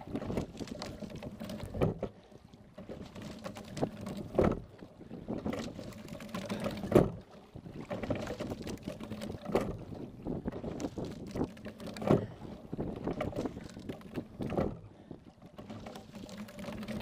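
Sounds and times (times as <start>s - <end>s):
oar knock and splash: 0.0s - 17.0s
oars and sliding seat rowing: 0.0s - 17.0s
water rushing past hull: 0.0s - 17.0s.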